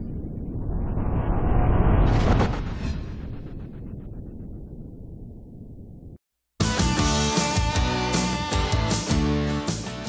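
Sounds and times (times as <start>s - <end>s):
deep rumbling sound effect: 0.0s - 6.2s.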